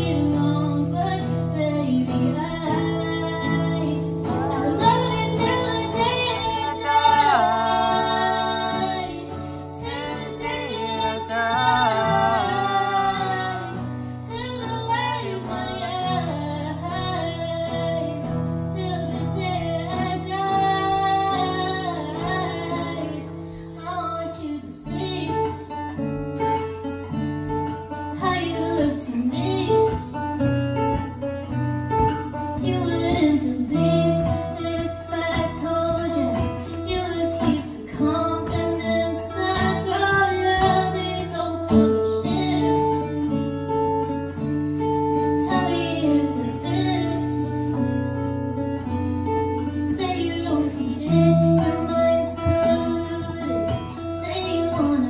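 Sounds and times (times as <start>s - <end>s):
strummed acoustic guitar: 0.0s - 55.0s
woman singing: 0.0s - 55.0s.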